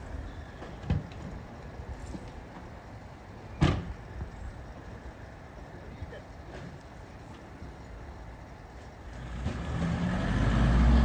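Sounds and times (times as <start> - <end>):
van door slamming: 3.6 - 3.9.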